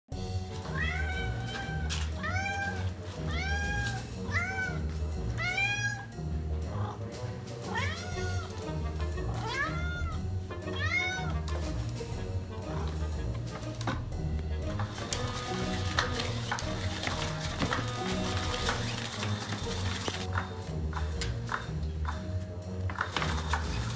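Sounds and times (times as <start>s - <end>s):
background music with steady beat: 0.1s - 23.9s
cat meowing: 0.6s - 6.2s, 7.7s - 8.7s, 9.3s - 11.6s.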